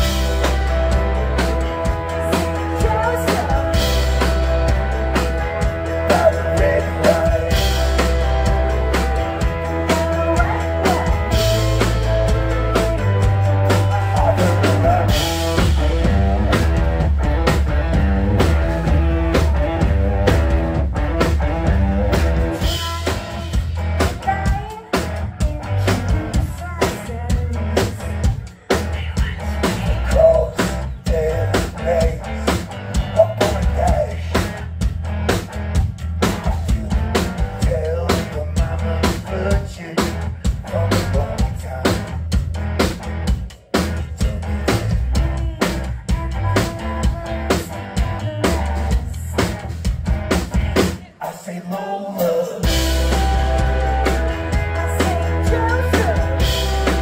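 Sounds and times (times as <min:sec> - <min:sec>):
bass guitar: 0:00.0 - 0:57.0
drum kit beat: 0:00.0 - 0:57.0
electric guitar: 0:00.0 - 0:57.0.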